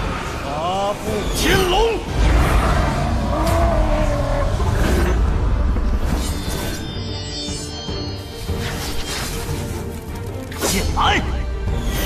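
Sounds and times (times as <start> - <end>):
dragon roaring: 2.0 - 5.4.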